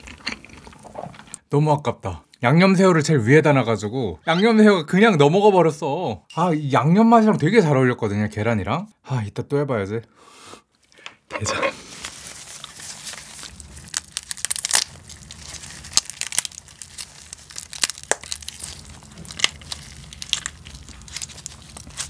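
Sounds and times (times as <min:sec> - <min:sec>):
crab shell cracking: 0:12.6 - 0:22.0.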